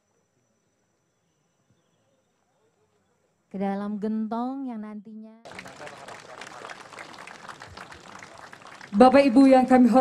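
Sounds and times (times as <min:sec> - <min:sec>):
crowd applauding: 0:05.5 - 0:10.0.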